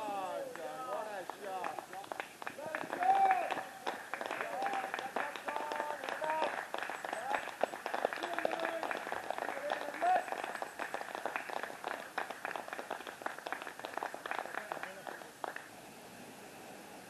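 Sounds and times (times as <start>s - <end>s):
distant people talking and calling: 0.0s - 15.7s.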